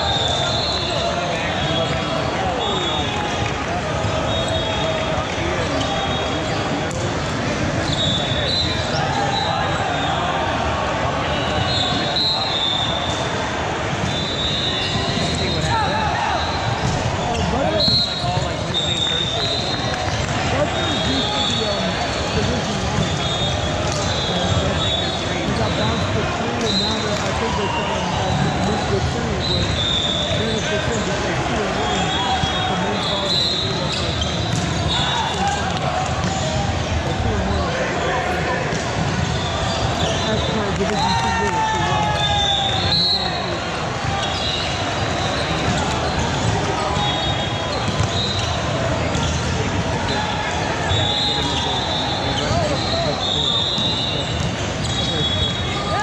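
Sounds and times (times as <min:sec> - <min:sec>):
voices talking and calling out: 0:00.0 - 0:56.0
volleyballs hit and bouncing: 0:01.0 - 0:09.8, 0:11.5 - 0:53.2, 0:54.0 - 0:56.0
sneaker squeaks: 0:04.0 - 0:10.2, 0:11.3 - 0:13.3, 0:14.0 - 0:38.1, 0:38.7 - 0:56.0.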